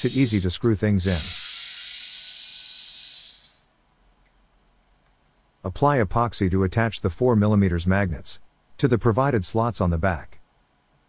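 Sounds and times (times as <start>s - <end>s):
cordless screwdriver whirring: 0.0s - 3.6s.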